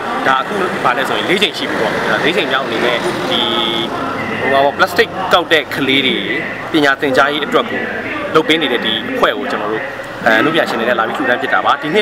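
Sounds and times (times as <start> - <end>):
man talking: 0.2 - 12.0.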